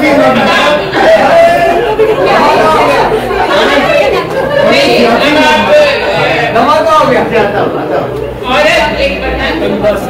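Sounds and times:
several voices talking: 0.0s - 10.0s.

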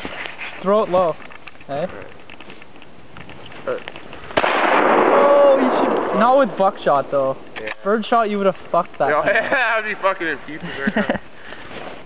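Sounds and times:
shotgun shot: 4.4s - 7.2s
loud rolling echo: 4.4s - 7.6s.

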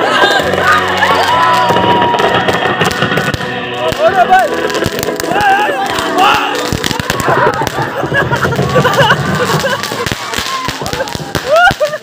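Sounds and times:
loud music: 0.0s - 11.6s
firecrackers crackling and popping: 0.0s - 12.0s
people shouting and cheering: 0.0s - 12.0s.

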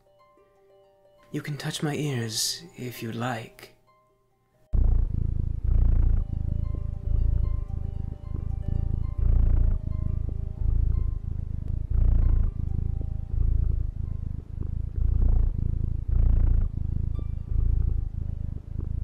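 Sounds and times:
soft background music: 0.0s - 4.8s, 5.6s - 19.0s
cat purring: 4.7s - 19.0s.

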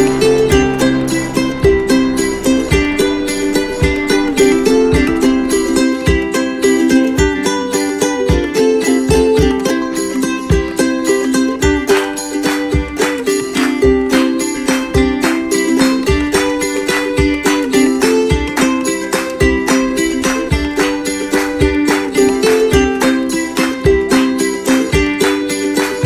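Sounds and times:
plucked-string tune over a beat: 0.0s - 26.0s.

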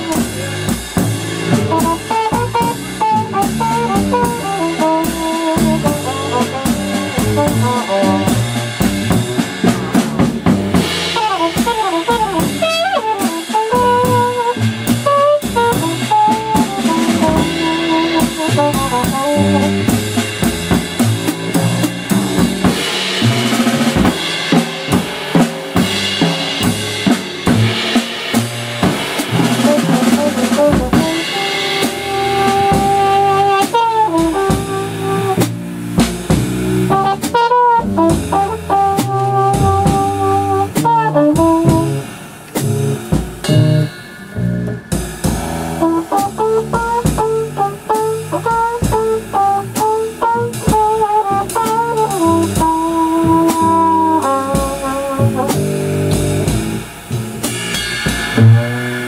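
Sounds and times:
stepping low bass notes: 0.0s - 57.6s
drum kit playing: 0.0s - 59.0s
muted trumpet playing jazz: 0.0s - 59.0s.

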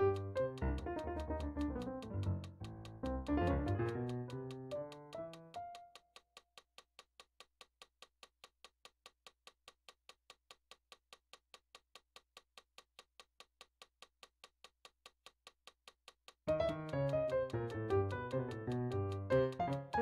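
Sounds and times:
piano note: 0.0s - 2.3s, 3.0s - 4.2s, 16.5s - 20.0s
metronome clicking: 0.0s - 20.0s.

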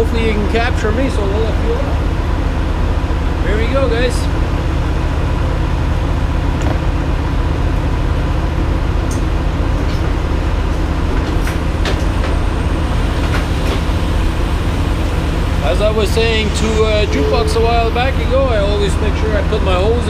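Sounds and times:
diesel truck engine idling: 0.0s - 20.0s.

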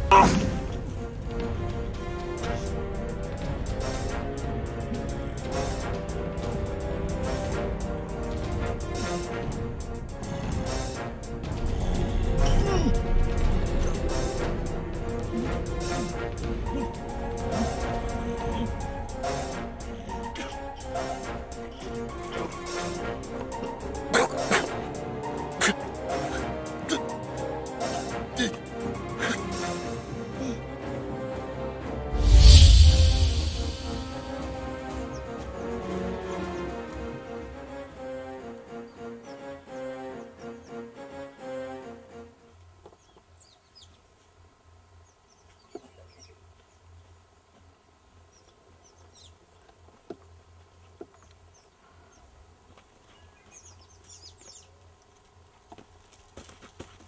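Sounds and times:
film music: 0.0s - 42.8s
small birds chirping: 11.5s - 29.9s, 42.4s - 55.5s
low hum: 32.1s - 35.1s.

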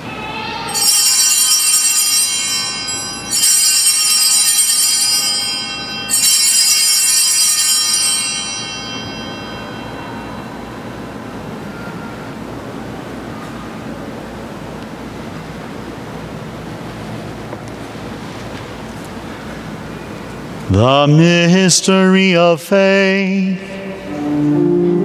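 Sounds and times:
altar bells ringing: 0.0s - 12.6s.

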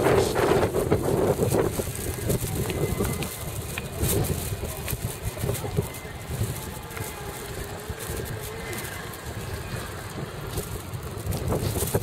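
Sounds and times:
street background: 0.0s - 12.0s
wind buffeting microphone: 0.0s - 12.0s.

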